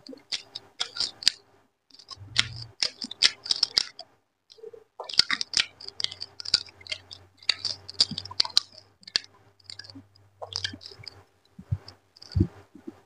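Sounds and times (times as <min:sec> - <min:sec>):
wet chewing smacks and clicks: 0:05.0 - 0:13.0.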